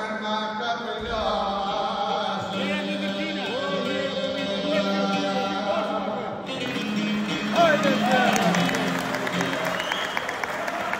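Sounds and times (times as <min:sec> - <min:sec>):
person singing: 0:00.0 - 0:08.7.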